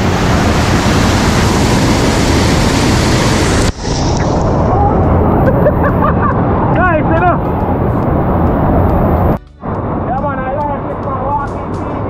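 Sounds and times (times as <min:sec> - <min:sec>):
whitewater rushing down waterfall: 0:00.0 - 0:05.4
person whooping: 0:04.6 - 0:05.7.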